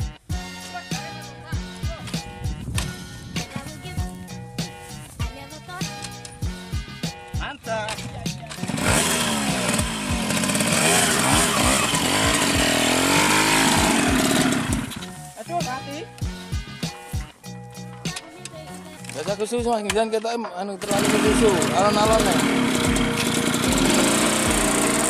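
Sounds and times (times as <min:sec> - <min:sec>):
background music with a beat: 0:00.0 - 0:20.6, 0:21.3 - 0:25.0
motorcycle engine revving hard: 0:08.5 - 0:15.0, 0:20.8 - 0:25.0.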